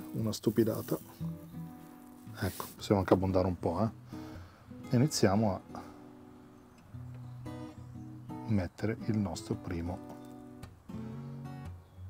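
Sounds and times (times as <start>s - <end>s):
acoustic guitar music: 0.0s - 12.0s.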